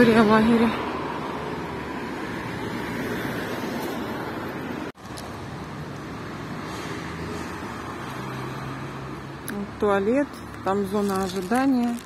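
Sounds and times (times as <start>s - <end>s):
road traffic passing cars: 0.0s - 12.0s.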